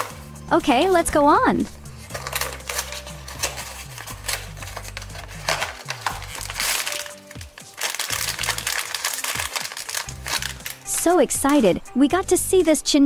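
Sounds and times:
background music: 0.0 - 13.0
foil bag crinkling: 2.1 - 11.7.

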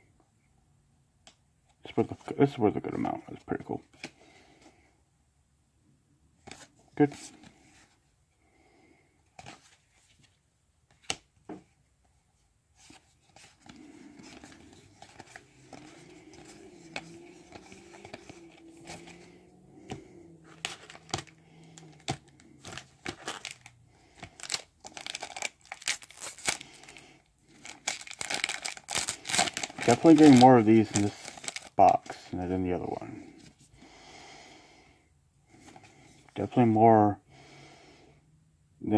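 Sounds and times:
cards flipping and sliding: 12.8 - 23.6
foil wrapper crinkling and tearing: 20.5 - 32.1.

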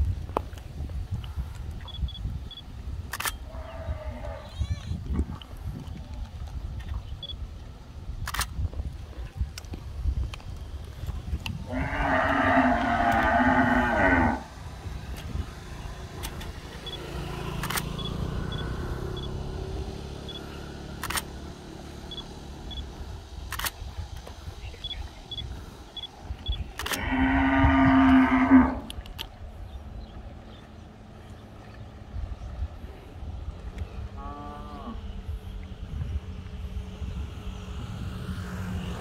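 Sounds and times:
cattle mooing: 11.7 - 14.5, 27.0 - 28.9, 34.2 - 35.0.

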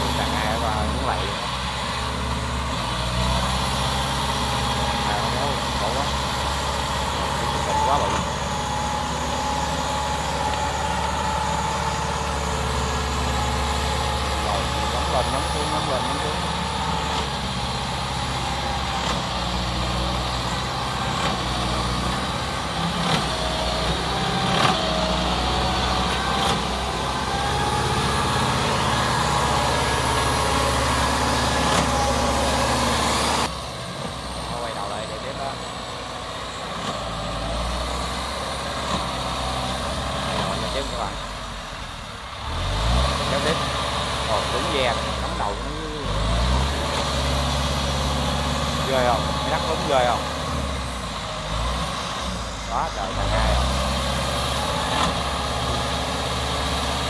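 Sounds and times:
small tractor engine running: 0.0 - 57.0.

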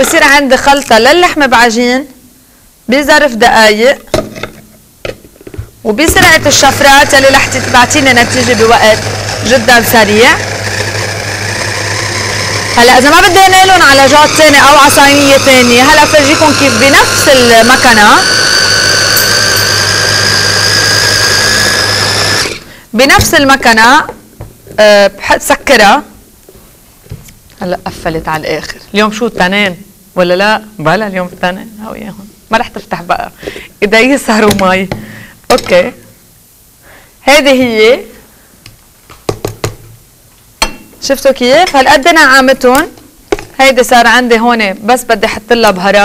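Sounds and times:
electric mini chopper whining: 6.3 - 22.6.

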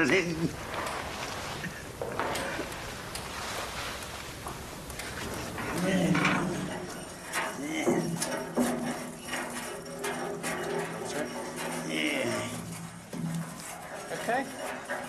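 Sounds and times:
knocks and scuffs of people moving: 0.0 - 15.0
steady low hum: 0.0 - 15.0.

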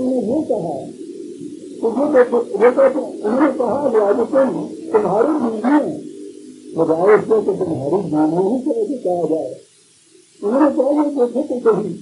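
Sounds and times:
man lecturing: 0.0 - 1.0, 1.7 - 6.1, 6.7 - 9.6, 10.4 - 12.0.

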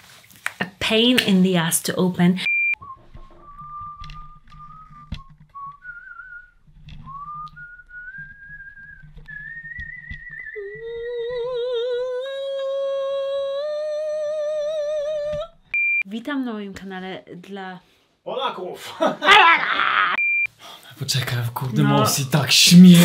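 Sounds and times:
person whistling: 2.6 - 11.4.

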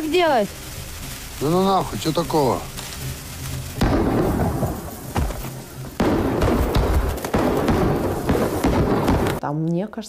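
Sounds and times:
fireworks crackling and booming: 0.0 - 9.5.

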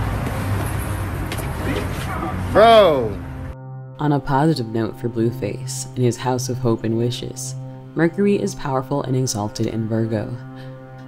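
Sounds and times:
cars passing on wet road: 0.0 - 3.6.

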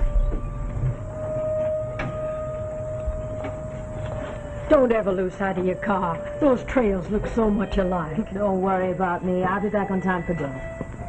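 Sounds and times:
steady held tone: 0.0 - 11.0.

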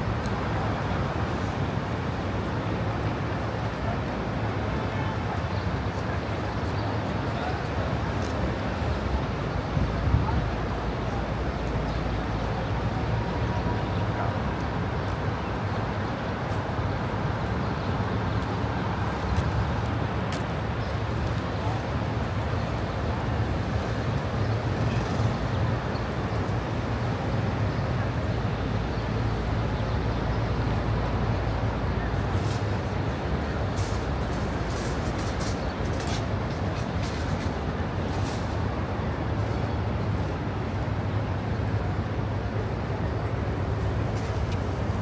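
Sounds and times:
low traffic rumble: 0.0 - 45.0
murmur of passing voices: 0.0 - 45.0
street noise: 0.0 - 45.0.

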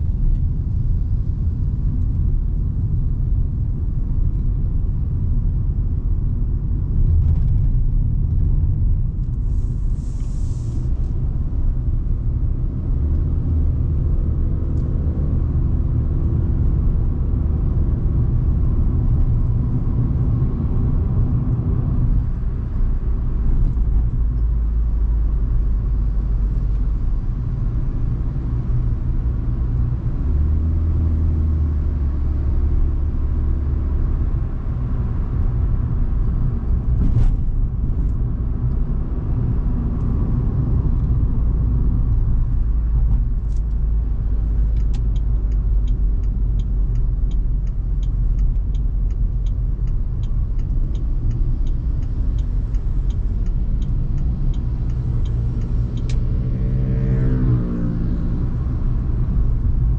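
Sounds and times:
road and engine rumble: 0.0 - 59.9
turn-signal ticking: 44.0 - 56.3.

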